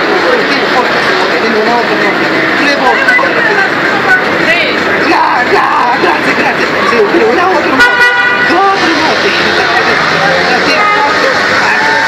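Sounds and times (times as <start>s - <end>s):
people talking: 0.0s - 12.0s
horn toot: 7.7s - 12.0s.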